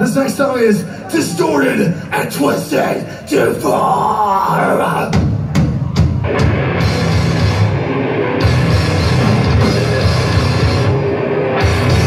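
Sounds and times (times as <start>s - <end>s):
death metal band playing: 5.0s - 12.0s.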